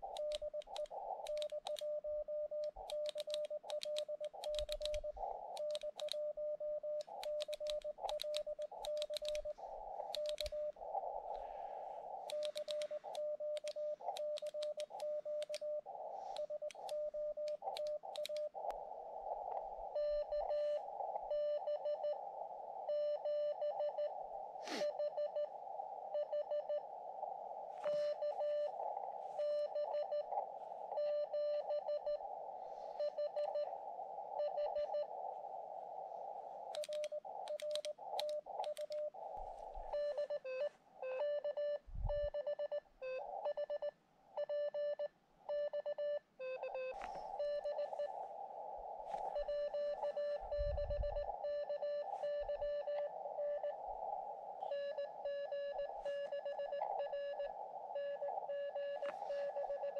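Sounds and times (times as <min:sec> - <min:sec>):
sharp clicks: 0:00.0 - 0:11.5, 0:12.1 - 0:18.8, 0:36.6 - 0:40.6
radio receiver hiss: 0:00.0 - 0:43.8, 0:46.5 - 0:59.9
morse code tone: 0:36.8 - 0:48.3, 0:49.0 - 0:53.8, 0:54.6 - 0:59.9.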